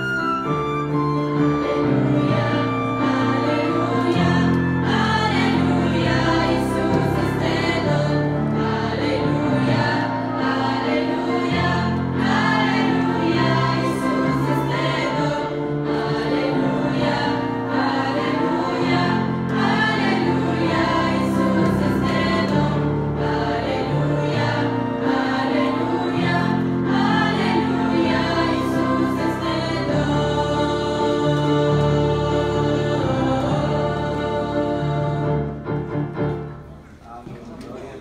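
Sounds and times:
choir singing a hymn: 0:00.0 - 0:36.5.

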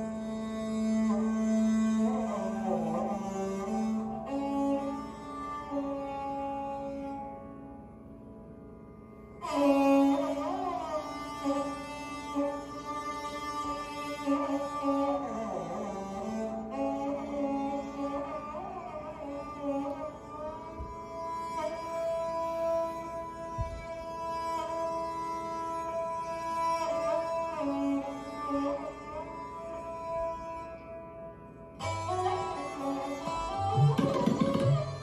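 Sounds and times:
bowed sarangi melody: 0:00.0 - 0:35.0
sympathetic strings ringing: 0:25.0 - 0:35.0
tabla strokes: 0:31.8 - 0:35.0.

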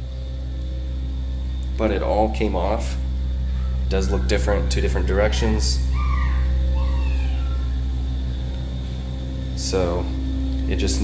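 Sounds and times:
low mechanical drone: 0:00.0 - 0:11.0.

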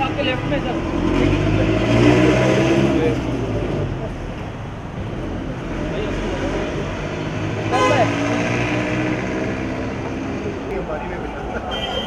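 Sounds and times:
traffic noise: 0:00.0 - 0:12.0
vehicle engines humming: 0:00.0 - 0:12.0.

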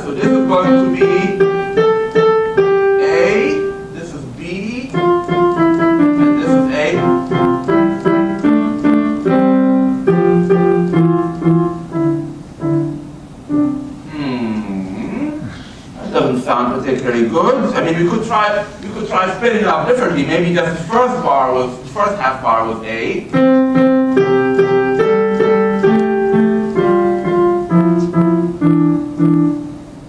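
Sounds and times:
piano playing a canon: 0:00.0 - 0:14.5, 0:16.4 - 0:30.0.

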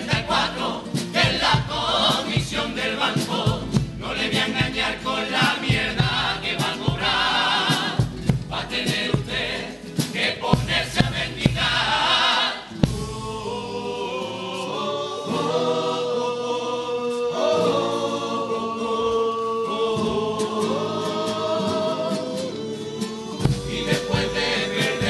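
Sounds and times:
sharp rhythmic hits: 0:00.0 - 0:13.8, 0:23.4 - 0:25.0
guitars: 0:00.0 - 0:25.0
male chorus singing in harmony: 0:00.0 - 0:25.0.

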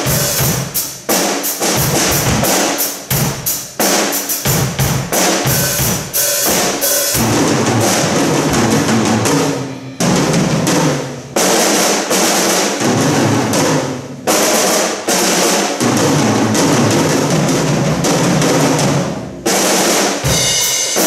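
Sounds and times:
drum kits playing together: 0:00.0 - 0:21.0
bass drum: 0:01.8 - 0:03.5, 0:04.4 - 0:11.0, 0:20.3 - 0:21.0
cymbal crashes: 0:05.2 - 0:10.6.

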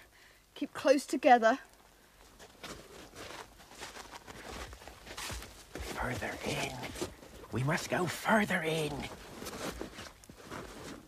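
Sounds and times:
footsteps crunching in snow: 0:02.4 - 0:08.0, 0:08.6 - 0:11.0.

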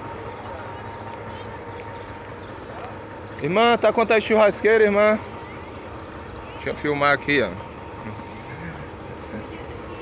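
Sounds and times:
faint voices: 0:00.0 - 0:10.0
steady street hum: 0:00.0 - 0:10.0.

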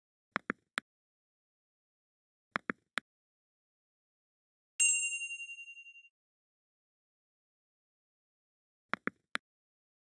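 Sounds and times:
bright bell ding: 0:04.8 - 0:06.1.

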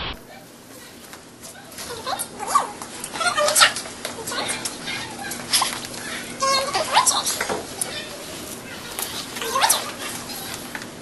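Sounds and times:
indistinct children's voices: 0:00.3 - 0:11.0.

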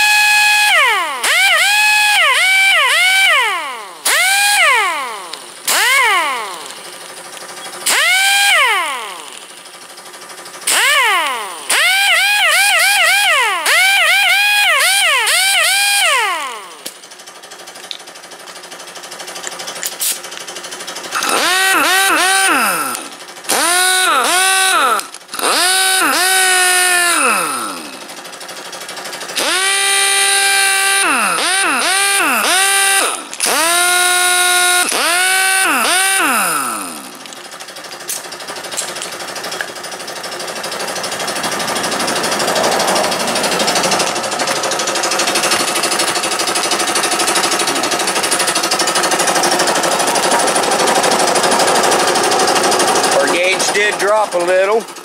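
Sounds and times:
air compressor running: 0:00.0 - 0:55.0
air impact wrench whine: 0:00.0 - 0:55.0.

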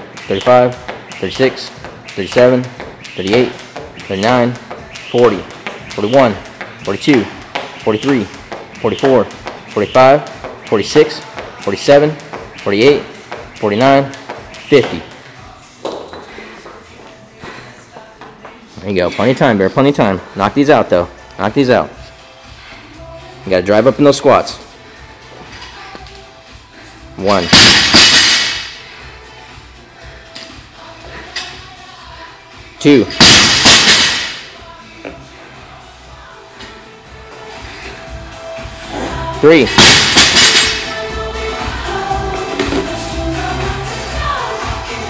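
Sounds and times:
footsteps on rubber gym floor: 0:00.0 - 0:19.1
background music: 0:00.0 - 0:45.0.

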